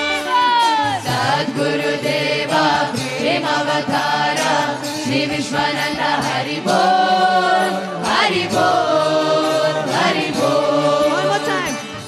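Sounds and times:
voices chanting a devotional song: 0.0 - 12.0.

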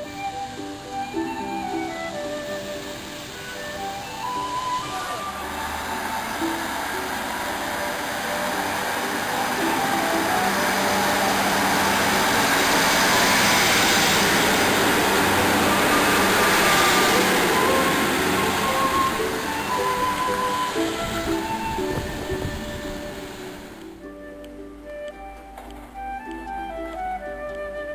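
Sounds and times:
background music: 0.0 - 27.9
diesel train pulling out: 0.0 - 27.9.

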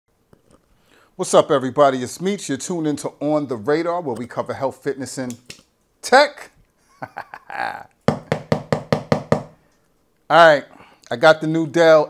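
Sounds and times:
rapid knocks: 8.1 - 9.6.

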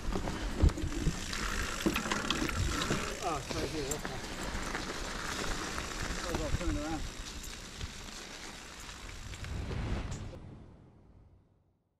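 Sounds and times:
bike tyres rolling over gravel: 0.0 - 10.3.

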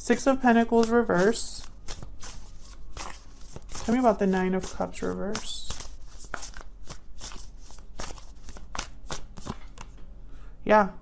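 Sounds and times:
cards being shuffled: 0.1 - 10.0.

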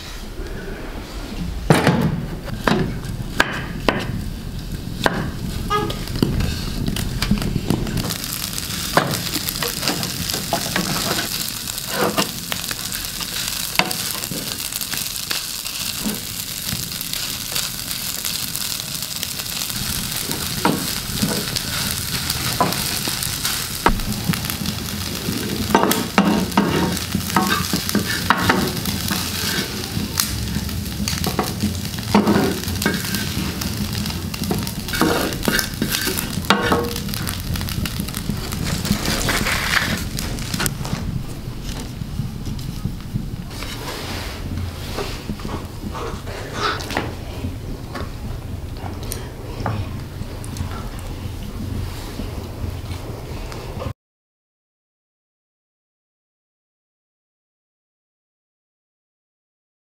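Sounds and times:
dough frying with hiss: 2.1 - 53.9.

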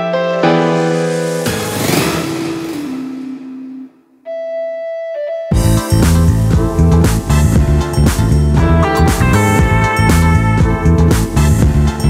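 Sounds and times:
noisy swell: 0.3 - 4.2
low note stepping down: 0.4 - 4.2.

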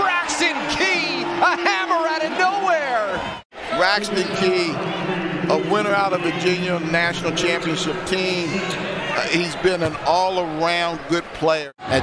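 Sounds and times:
people shouting and whooping: 0.0 - 5.3.

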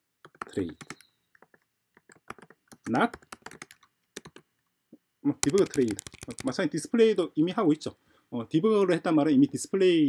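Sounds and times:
computer keyboard typing: 0.2 - 4.5, 5.4 - 6.6.

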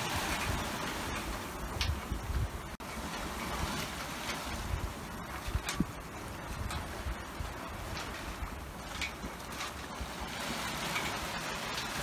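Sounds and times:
water splashing along boat hull: 0.0 - 12.0
wind buffeting microphone: 0.0 - 12.0.

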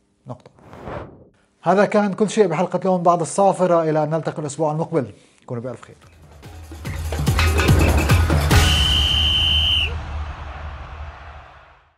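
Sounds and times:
long steady whistle blast: 8.5 - 10.0.

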